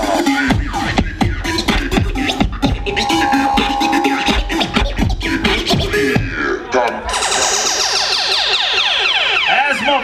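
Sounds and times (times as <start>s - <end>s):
turntable scratching: 0.0s - 8.7s.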